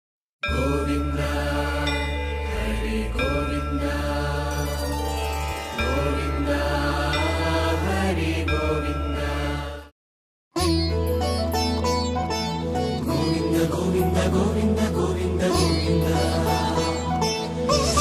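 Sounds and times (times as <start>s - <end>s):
chanted mantra with music: 0.4s - 9.9s, 13.0s - 17.6s.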